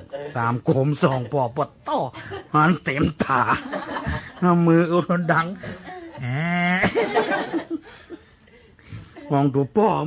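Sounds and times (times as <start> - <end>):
man preaching: 0.0 - 7.4, 9.2 - 10.0
man chuckling: 5.4 - 8.1.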